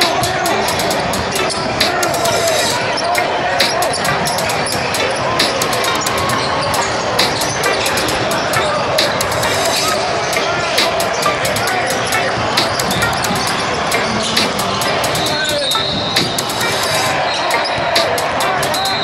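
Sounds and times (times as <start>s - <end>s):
background music: 0.0s - 19.0s
people calling out in echoing hall: 0.0s - 19.0s
sneakers squeaking: 0.0s - 19.0s.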